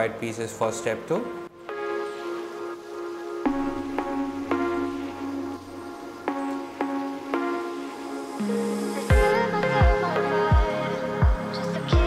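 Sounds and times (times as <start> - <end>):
instrumental chords: 0.1 - 12.0.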